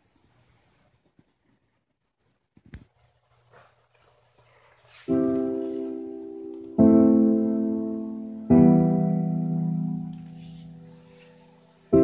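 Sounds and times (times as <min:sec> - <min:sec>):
faint hiss: 0:00.0 - 0:12.0
rustling: 0:00.0 - 0:12.0.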